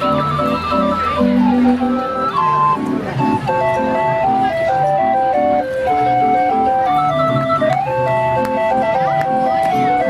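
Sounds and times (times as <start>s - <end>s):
street organ playing a tune: 0.0s - 10.0s.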